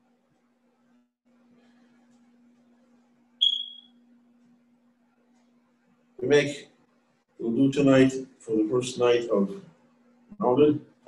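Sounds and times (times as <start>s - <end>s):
short high-pitched beep: 3.4s - 4.0s.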